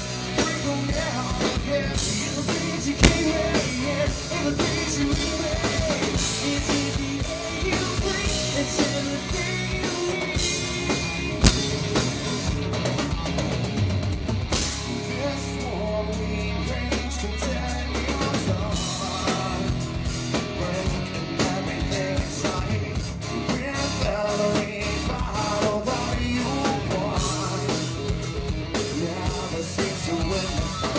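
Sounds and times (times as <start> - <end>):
drum kit: 3.0 - 4.0, 11.3 - 12.6.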